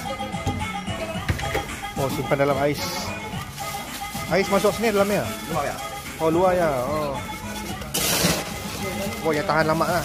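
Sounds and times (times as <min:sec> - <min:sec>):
ice and plastic bag crunching: 0:03.4 - 0:10.0.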